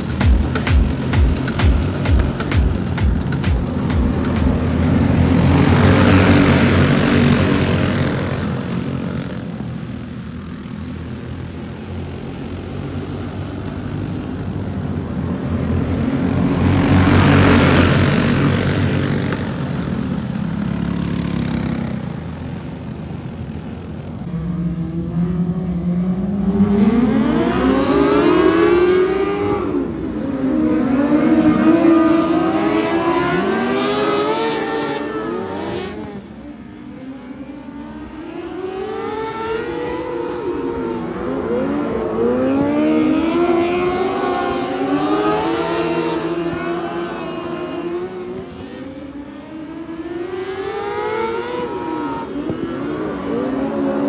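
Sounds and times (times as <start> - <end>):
go-kart engines racing: 0.0 - 54.0.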